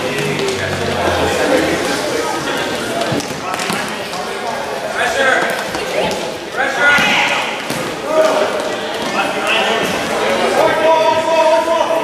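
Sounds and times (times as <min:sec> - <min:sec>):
voices shouting in a gym: 0:00.0 - 0:12.0.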